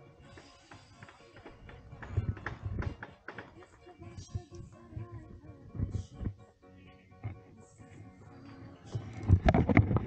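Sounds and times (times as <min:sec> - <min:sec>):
dull low thumps: 0:04.0 - 0:06.5.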